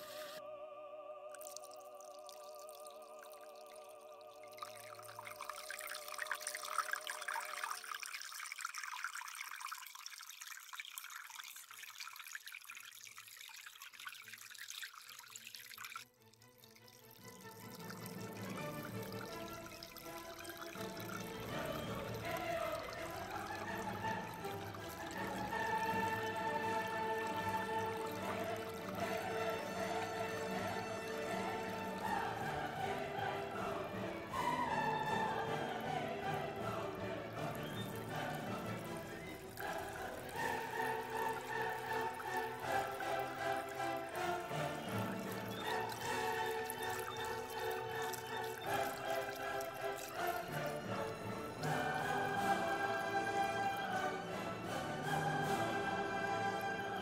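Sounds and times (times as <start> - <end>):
fountain water trickling and splashing: 0.0 - 0.4, 1.4 - 57.0
music with long held notes: 20.8 - 46.6, 50.2 - 57.0.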